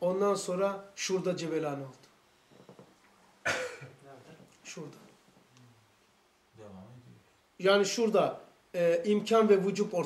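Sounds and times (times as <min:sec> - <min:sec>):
person coughing: 0:03.4 - 0:04.0.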